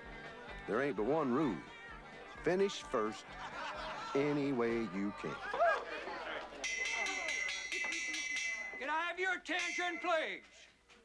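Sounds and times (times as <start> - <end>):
crowd chatter: 0.0 - 7.6
hand bell ringing rapidly: 6.6 - 9.0.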